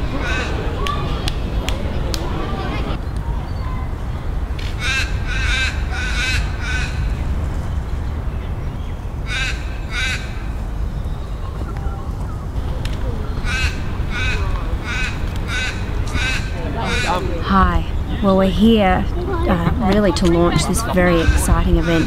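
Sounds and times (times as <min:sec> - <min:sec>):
bird cawing: 0:04.8 - 0:07.2, 0:09.2 - 0:11.1, 0:13.0 - 0:17.4.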